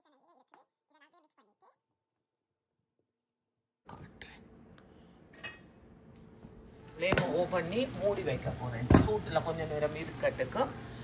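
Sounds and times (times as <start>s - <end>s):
faint kitchen noise: 3.9s - 11.0s
cookware clink: 8.9s - 9.2s.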